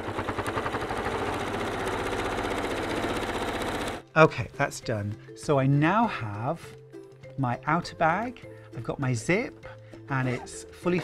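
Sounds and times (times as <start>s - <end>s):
sewing machine running: 0.0s - 4.0s.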